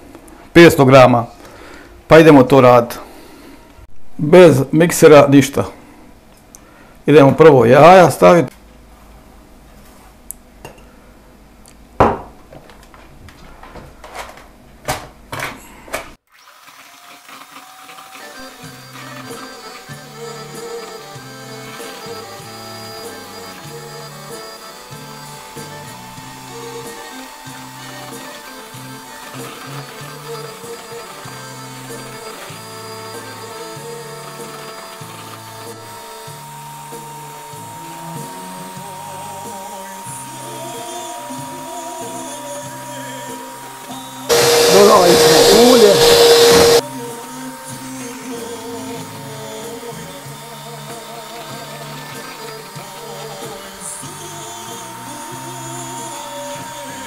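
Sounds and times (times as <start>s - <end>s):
electric hand mixer whipping batter: 16.3s - 57.0s
background music: 18.2s - 57.0s.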